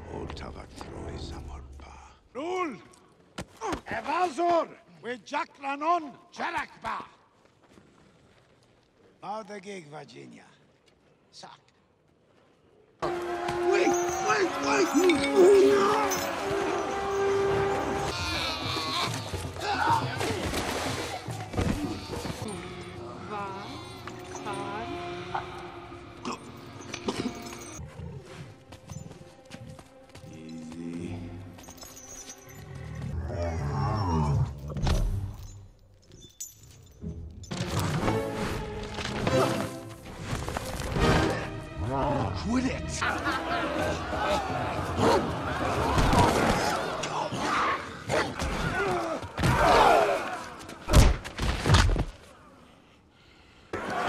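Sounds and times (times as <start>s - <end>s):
film score music: 0.0s - 2.5s, 13.0s - 35.7s, 36.9s - 47.9s
creature cries: 18.0s - 20.3s, 21.6s - 24.2s
growling creature calls: 33.1s - 34.7s.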